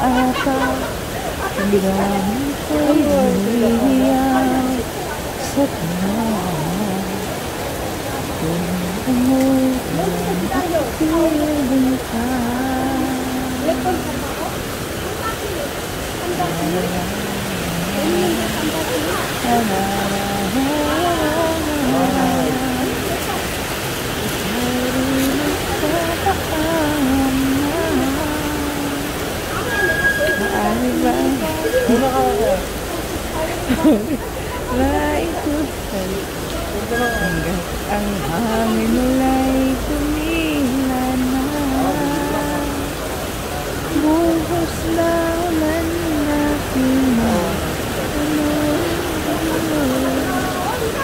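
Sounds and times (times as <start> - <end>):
person's wavering voice: 0.0 - 7.5, 8.3 - 14.6, 16.1 - 23.4, 24.2 - 29.3, 30.3 - 32.8, 33.4 - 43.2, 43.9 - 51.0
heavy rain on pavement: 0.0 - 51.0
bus pulling in: 15.2 - 40.3.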